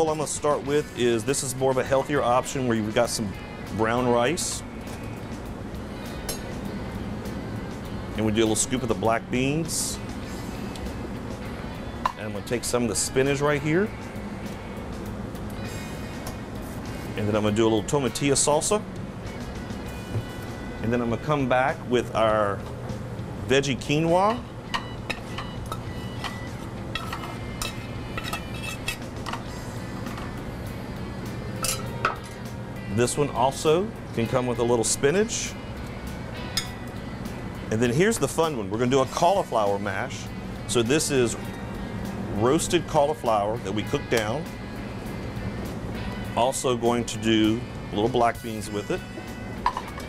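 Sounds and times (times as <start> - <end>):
background music: 0.0 - 50.0
steady low hum: 0.0 - 50.0
metal spoon scraping pan: 27.0 - 29.1.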